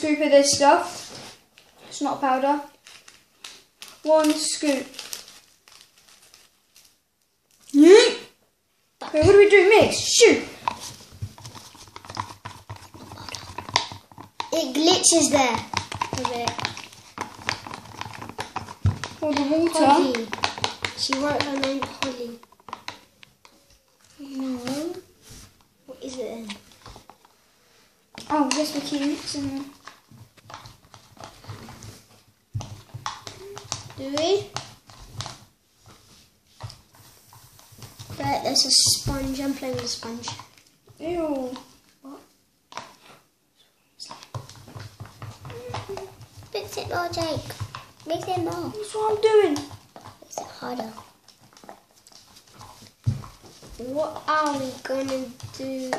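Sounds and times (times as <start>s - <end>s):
low room noise: 0.0s - 55.9s
plastic cups clicking: 9.9s - 25.0s, 28.1s - 36.0s, 36.6s - 41.8s, 44.0s - 55.9s.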